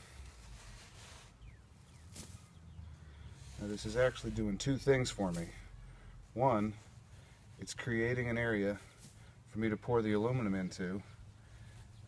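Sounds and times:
trowel scraping sandy soil: 0:00.0 - 0:02.5, 0:03.4 - 0:05.6.

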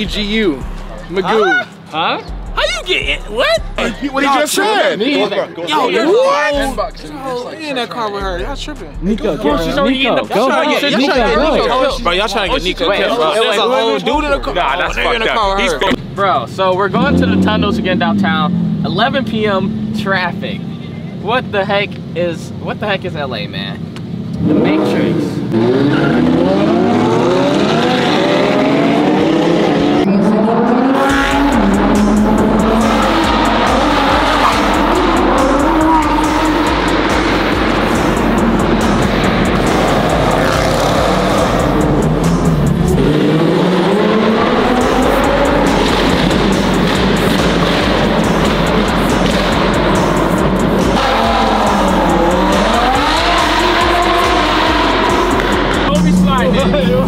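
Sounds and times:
car engines revving: 0:00.0 - 0:57.0.

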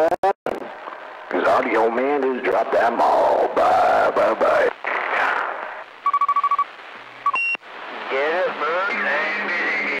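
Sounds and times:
voice over radio: 0:01.3 - 0:05.8, 0:08.0 - 0:10.0
short high beeps: 0:07.2 - 0:07.6.

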